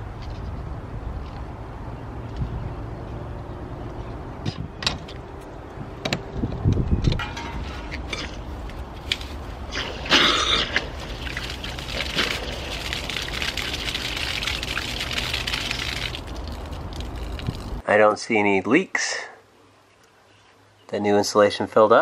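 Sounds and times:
water pouring onto grass: 9.2 - 17.8.

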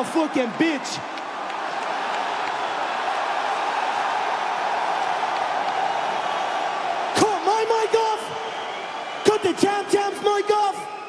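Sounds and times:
arena crowd cheering and shouting: 0.0 - 11.0.

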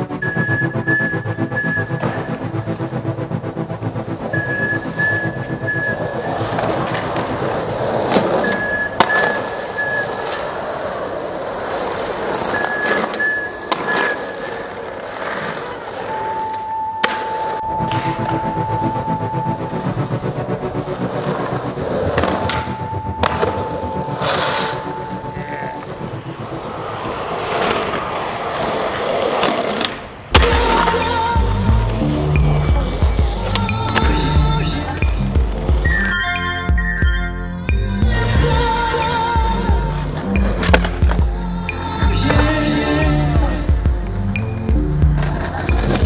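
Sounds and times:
skateboard wheels rolling on pavement: 0.0 - 36.2, 38.0 - 46.0
skateboard clacking: 0.2 - 2.8, 4.2 - 19.0, 20.2 - 36.3, 38.4 - 46.0
music with steady low beat: 30.4 - 46.0.

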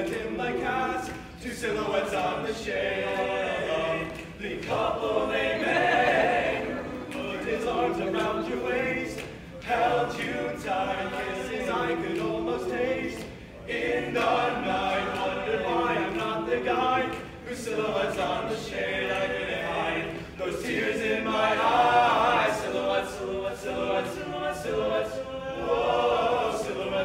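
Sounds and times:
boys singing a cappella: 0.0 - 27.0.

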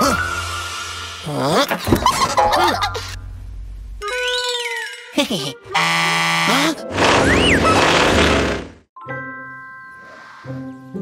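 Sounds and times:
soft background music: 9.0 - 11.0.

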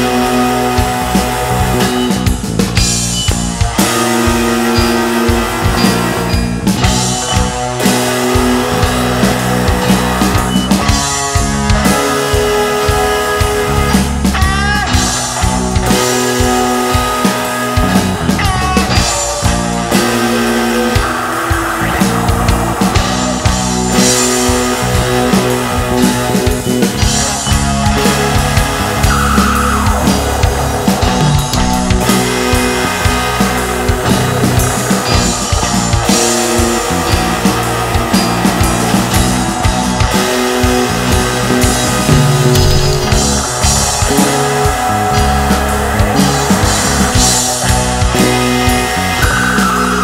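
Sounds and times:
drum kit strikes: 0.0 - 50.0
rock band playing: 0.0 - 50.0
sustained bass notes: 0.0 - 50.0.

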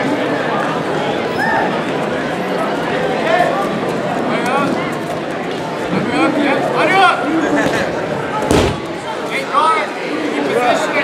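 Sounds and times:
bodies thudding on mat: 8.4 - 9.0.

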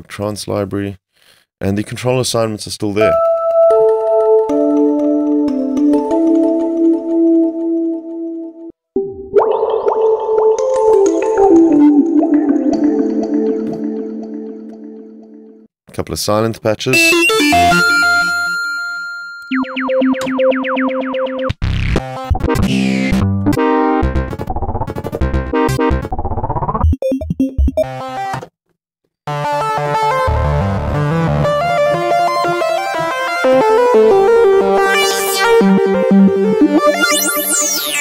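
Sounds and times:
arpeggiated synth pattern: 11.0 - 15.5, 17.0 - 21.5, 34.6 - 38.0
synthesizer patches: 17.0 - 18.7, 19.5 - 23.2, 33.4 - 38.0.

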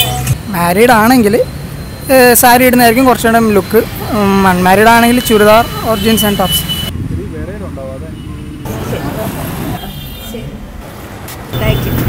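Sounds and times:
road traffic rumbling: 0.0 - 12.0
people talking: 2.1 - 6.6, 11.6 - 12.0.

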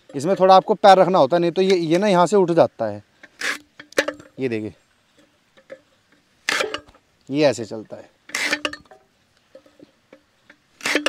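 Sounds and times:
loud cut through cane: 3.3 - 3.7, 6.4 - 6.9, 8.3 - 8.7, 10.7 - 11.0.

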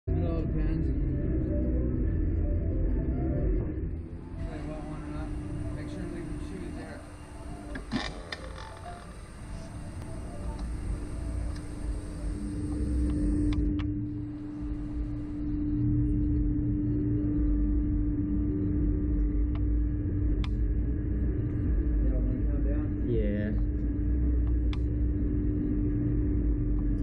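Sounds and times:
low rumble: 0.1 - 27.0
ride machinery humming: 3.1 - 16.4.

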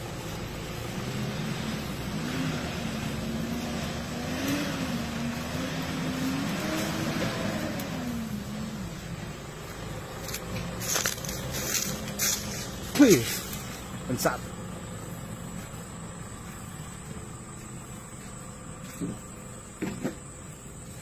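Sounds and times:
pickup truck engine pulling away: 0.0 - 21.0.

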